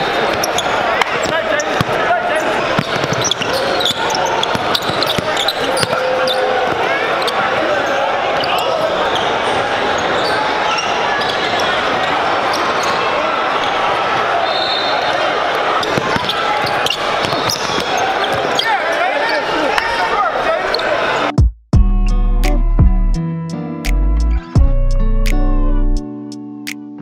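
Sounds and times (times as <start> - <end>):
hubbub of voices: 0.0 - 21.4.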